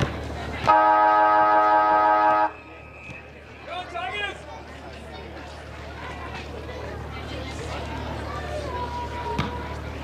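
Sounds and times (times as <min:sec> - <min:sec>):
multi-tone horn blast: 0:00.7 - 0:02.6.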